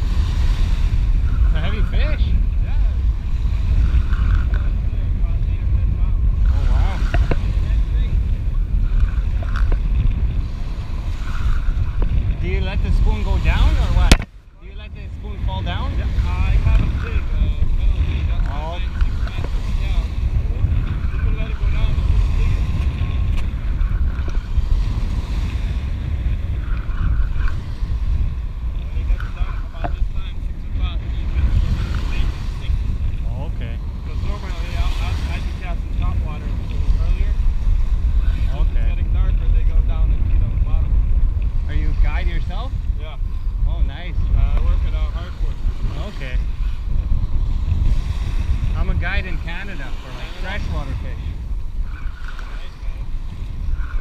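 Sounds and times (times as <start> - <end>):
small waves washing ashore: 0.0 - 54.0
wind buffeting microphone: 0.0 - 54.0.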